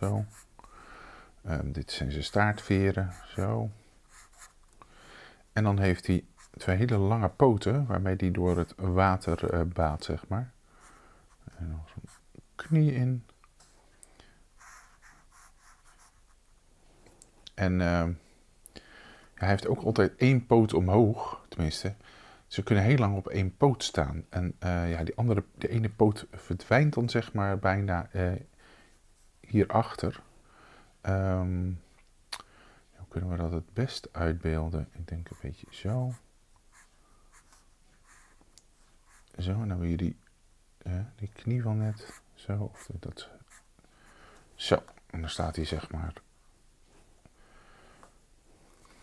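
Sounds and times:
felt-tip pen scratching on paper: 4.1s - 4.6s, 14.6s - 16.4s, 35.2s - 38.4s.

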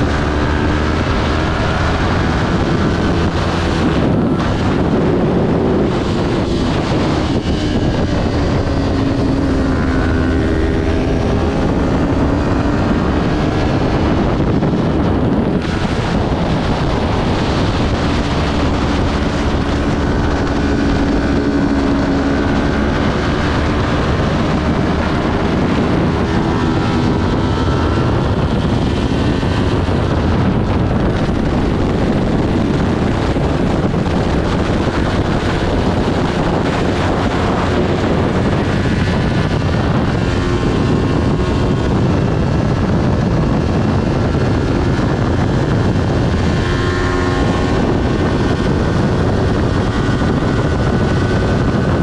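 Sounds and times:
motorcycle engine revving: 0.0s - 52.0s
wind rush on microphone: 0.0s - 52.0s.

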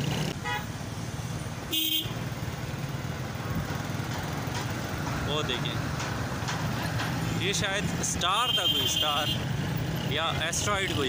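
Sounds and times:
road traffic rumble: 0.0s - 11.0s
vehicle horn toots: 0.4s - 0.7s, 1.7s - 2.2s, 8.4s - 9.4s.

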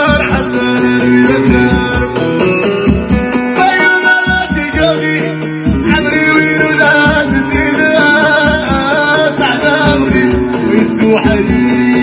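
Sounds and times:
amplified plucked-string melody: 0.0s - 12.0s
man singing into a microphone: 0.0s - 12.0s
steady drum beat: 0.0s - 12.0s.

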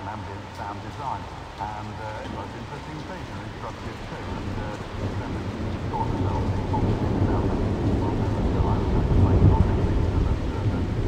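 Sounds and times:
rain hiss: 0.0s - 11.0s
thunder rumbling: 1.5s - 11.0s.

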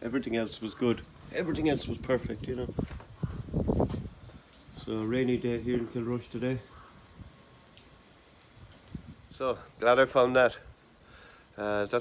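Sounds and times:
light rain patter: 0.0s - 12.0s
small drips: 0.0s - 12.0s.

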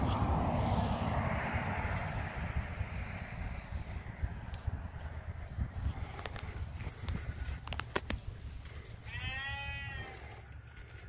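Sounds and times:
farm animal call: 8.6s - 11.0s.

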